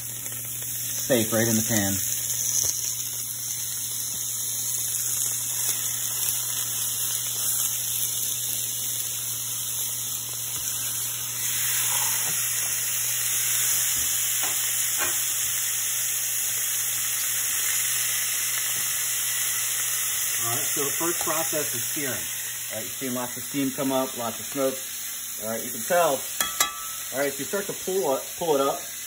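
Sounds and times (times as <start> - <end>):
steak sizzling in a pan: 0.0 - 29.0.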